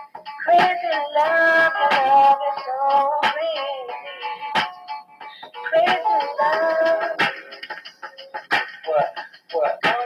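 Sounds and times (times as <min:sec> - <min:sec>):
music through speakers: 0:00.0 - 0:10.0.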